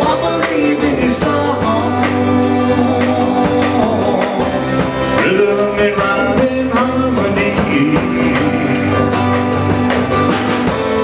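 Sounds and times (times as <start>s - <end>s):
acoustic guitar: 0.0s - 11.0s
country rock band playing: 0.0s - 11.0s
drum kit beat: 0.0s - 11.0s.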